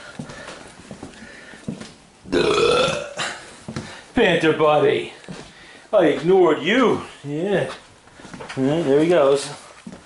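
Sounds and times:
person burping: 0:02.3 - 0:03.4.

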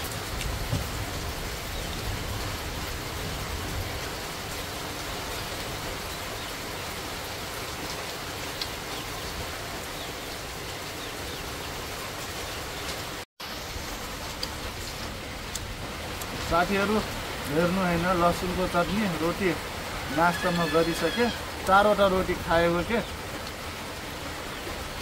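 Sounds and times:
heavy rain falling: 0:00.0 - 0:25.0.

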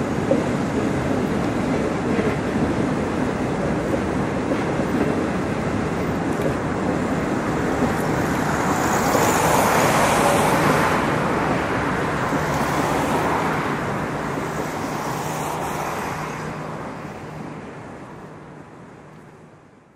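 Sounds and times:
train wheels rumbling on rails: 0:00.0 - 0:19.7.

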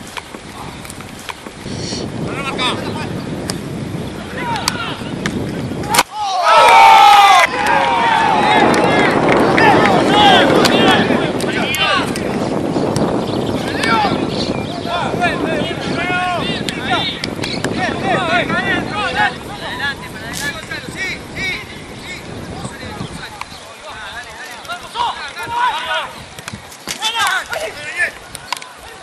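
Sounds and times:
wind noise on microphone: 0:00.0 - 0:29.0
men shouting: 0:04.2 - 0:05.1, 0:06.1 - 0:12.2, 0:13.7 - 0:22.3
distant shouting of players: 0:05.8 - 0:12.3.

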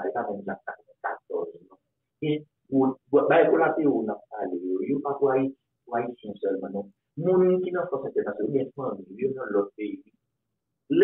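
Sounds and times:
man talking: 0:00.0 - 0:10.1.

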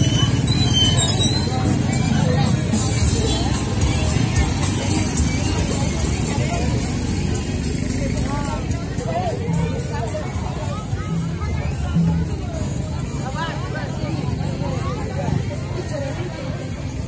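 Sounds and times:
cart engines rumbling: 0:00.0 - 0:17.0
music: 0:00.0 - 0:17.0
people's voices: 0:00.0 - 0:17.0.

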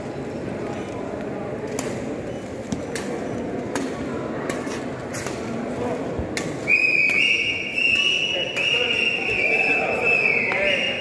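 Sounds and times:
loud high-pitched whistle: 0:06.6 - 0:11.0.

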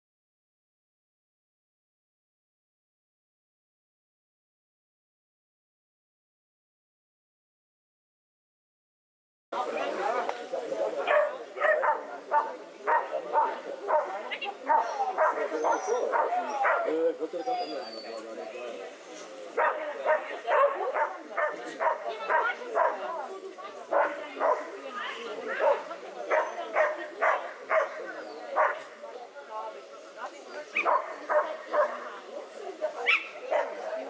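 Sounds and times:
dog barking: 0:11.0 - 0:17.0, 0:19.6 - 0:23.1, 0:23.9 - 0:24.7, 0:25.5 - 0:28.9, 0:30.8 - 0:32.0, 0:33.0 - 0:33.9.

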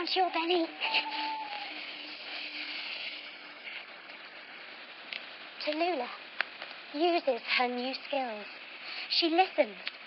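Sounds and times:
faint steady tone: 0:00.0 - 0:09.6.

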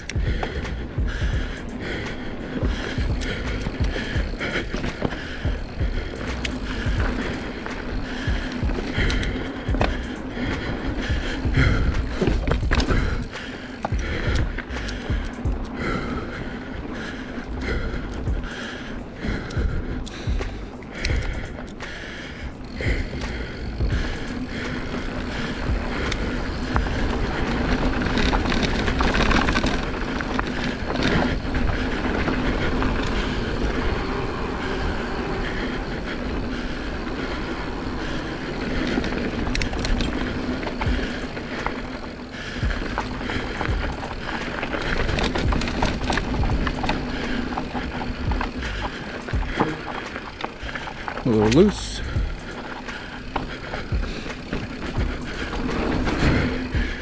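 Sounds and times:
bike rear hub buzzing: 0:00.0 - 0:57.0
bike tyres on dirt: 0:00.0 - 0:57.0.

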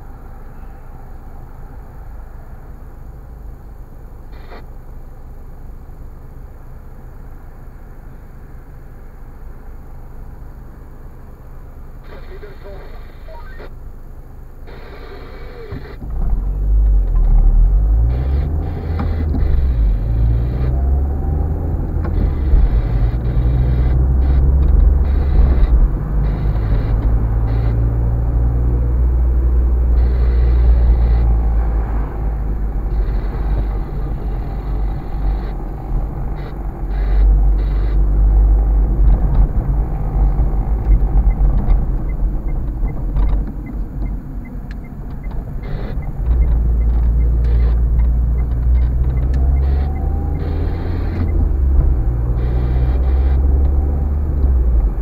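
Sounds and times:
car engine rumble: 0:00.0 - 0:55.0
road rumble: 0:00.0 - 0:55.0.

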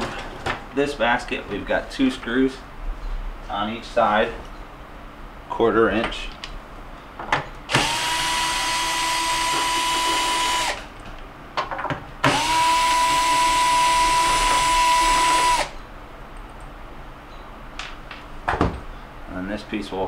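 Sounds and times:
cordless drill whining: 0:07.7 - 0:10.9, 0:12.2 - 0:15.8.

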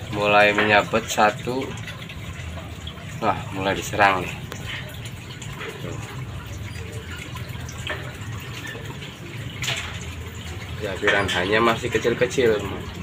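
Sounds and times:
filter water splashing: 0:00.0 - 0:13.0.

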